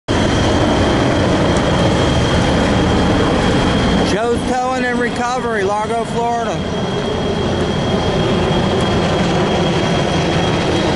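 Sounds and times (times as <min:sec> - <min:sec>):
diesel engine rumbling: 0:00.1 - 0:10.9
thin high-pitched whine: 0:00.3 - 0:10.9.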